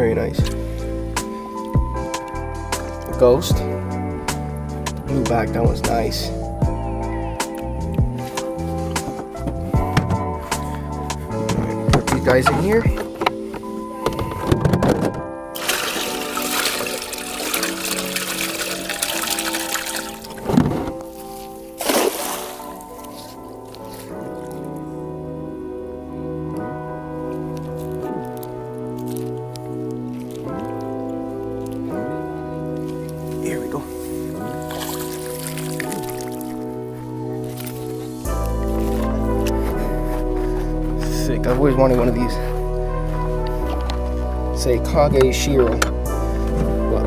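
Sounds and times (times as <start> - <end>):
background music held notes: 0.0 - 47.0
sharp splashes or knocks: 15.6 - 21.1, 21.8 - 22.9
water rushing and pouring: 15.6 - 22.9, 34.4 - 36.7.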